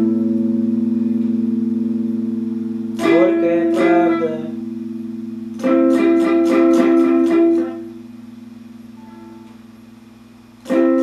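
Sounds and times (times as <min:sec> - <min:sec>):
electric guitar chord ringing: 0:00.0 - 0:11.0.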